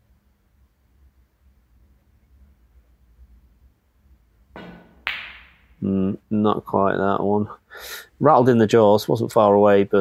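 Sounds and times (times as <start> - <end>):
cue tip tapping cue ball: 4.6 - 5.6
snooker balls clicking: 4.6 - 5.7.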